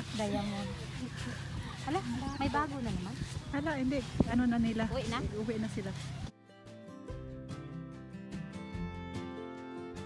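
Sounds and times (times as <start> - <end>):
people talking indistinctly: 0.0 - 6.3.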